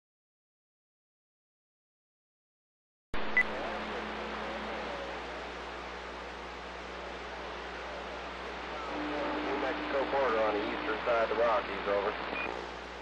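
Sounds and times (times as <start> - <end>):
radio static hiss: 3.2 - 13.0.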